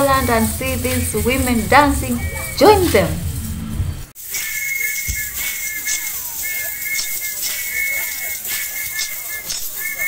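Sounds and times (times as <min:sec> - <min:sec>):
percussive beat: 0:04.2 - 0:10.0
shrill whistle blasts: 0:04.2 - 0:10.0.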